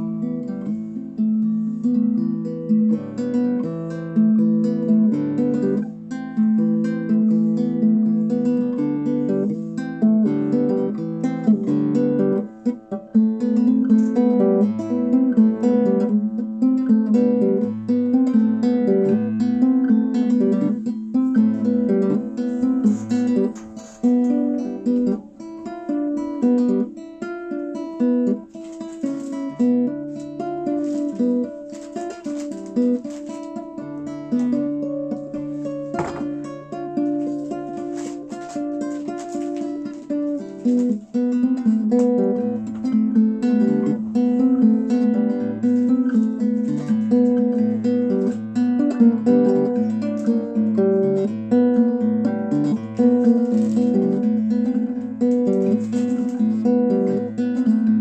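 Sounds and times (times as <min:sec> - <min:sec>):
solo guitar playing: 0:00.0 - 0:58.0.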